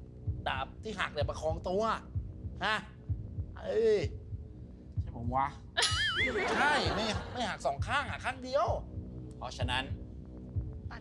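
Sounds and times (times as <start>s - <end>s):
heartbeat-like thumps: 0.0s - 11.0s.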